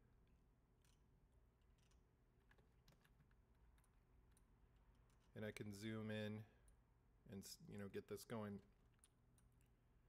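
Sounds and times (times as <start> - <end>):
keyboard and mouse clicks: 1.7 - 4.5.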